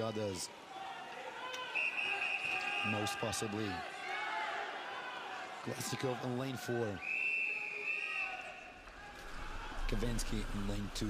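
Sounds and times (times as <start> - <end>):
high whistle-like tone: 1.6 - 3.0, 7.0 - 8.4.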